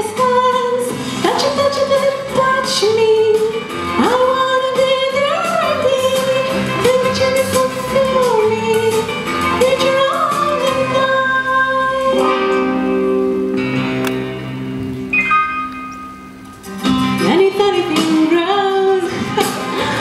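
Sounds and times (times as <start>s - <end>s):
woman singing into a microphone: 0.0s - 13.2s, 17.1s - 20.0s
instrumental accompaniment: 0.1s - 20.0s.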